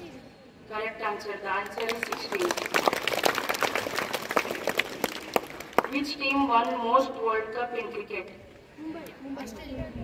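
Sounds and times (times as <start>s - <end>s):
people clapping: 1.6s - 6.2s.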